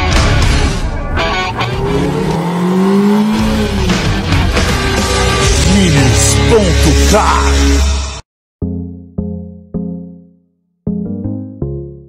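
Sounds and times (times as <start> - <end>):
intro music: 0.0 - 12.0
car engine sound effect: 0.6 - 6.5.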